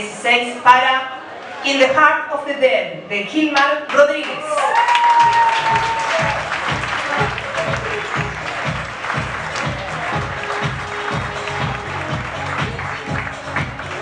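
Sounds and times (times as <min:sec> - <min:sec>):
audience applauding: 0:04.3 - 0:14.0
music with steady beat: 0:05.6 - 0:14.0.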